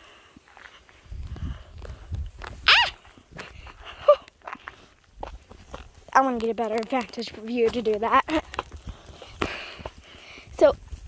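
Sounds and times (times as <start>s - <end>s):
footsteps on outdoor steps: 0.0s - 11.0s.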